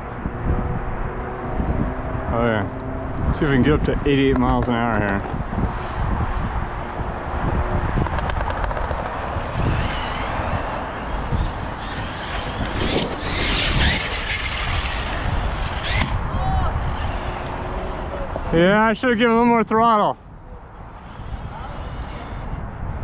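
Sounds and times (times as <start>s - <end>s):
wind rumble on microphone: 0.0s - 23.0s
electric motor whining and revving: 5.6s - 19.4s, 20.5s - 23.0s.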